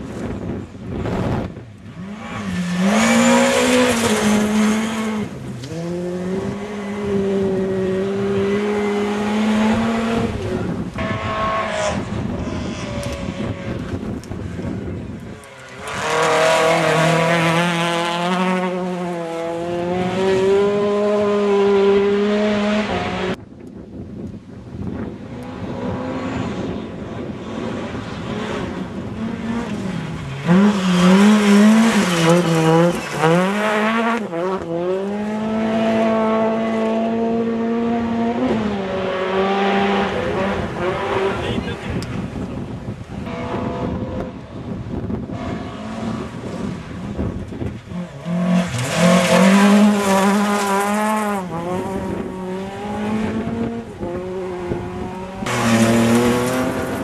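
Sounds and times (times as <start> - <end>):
rally car engines at high revs: 0.0 - 23.4, 24.9 - 57.0.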